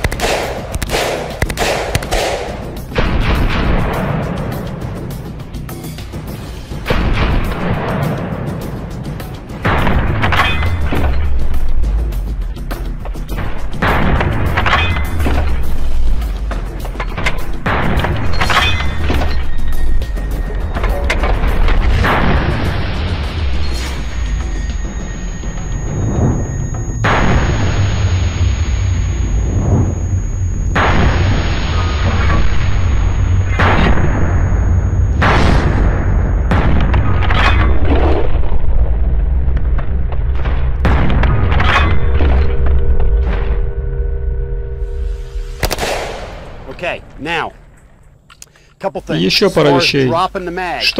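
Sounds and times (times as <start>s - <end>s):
music with heavy bass: 5.6s - 38.4s
booming hits: 9.6s - 11.6s, 20.7s - 44.2s.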